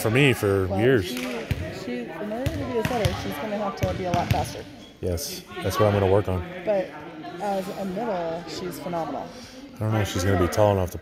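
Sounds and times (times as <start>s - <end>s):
volleyballs thudding on gym floor: 1.1s - 1.8s, 2.4s - 4.6s.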